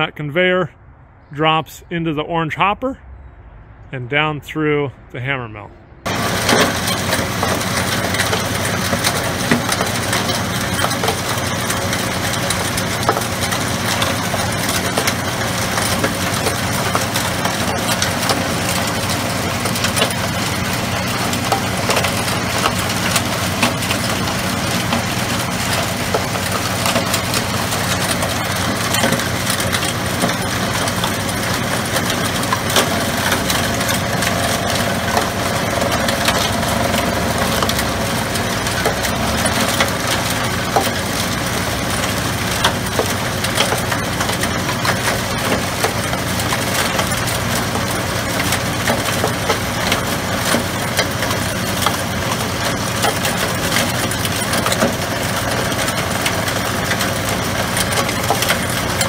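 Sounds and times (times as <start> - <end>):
hammer mill grinding rock: 6.0 - 59.0.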